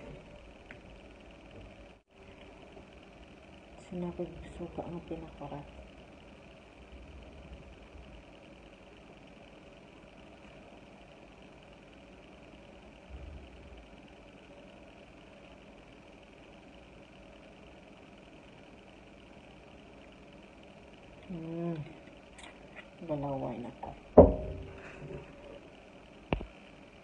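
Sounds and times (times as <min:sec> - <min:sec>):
soft low thump: 0:24.2 - 0:25.2.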